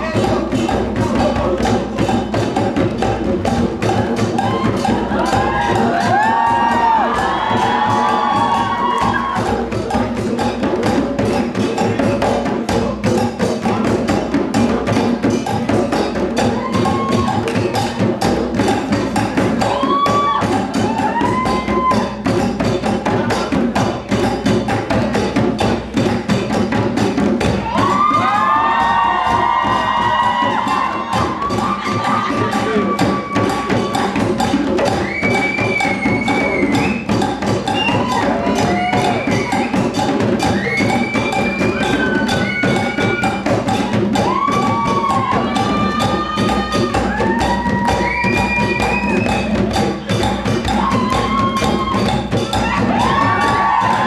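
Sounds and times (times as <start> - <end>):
hand drums playing: 0.0 - 54.0
crowd cheering and shouting: 3.8 - 10.2, 16.4 - 18.0, 19.4 - 22.4, 27.4 - 54.0.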